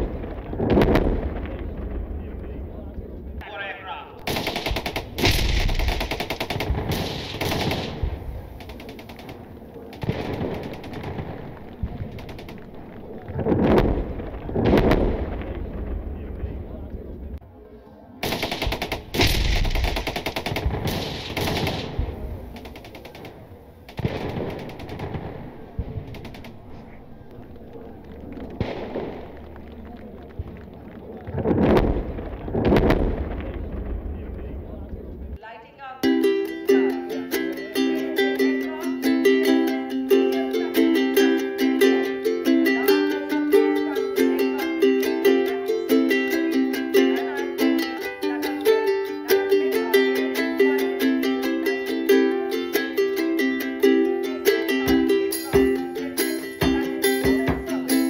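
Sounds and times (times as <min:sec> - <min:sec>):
deep booming rumbles: 0:00.0 - 0:03.4, 0:04.3 - 0:08.6, 0:10.0 - 0:17.4, 0:23.3 - 0:35.4
automatic gunfire bursts: 0:04.3 - 0:12.8, 0:18.2 - 0:25.3.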